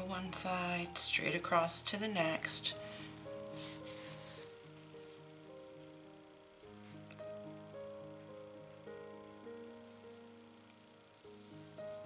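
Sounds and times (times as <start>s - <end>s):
soft background music: 0.0s - 12.0s
yarn rustling through stitches: 3.4s - 5.6s.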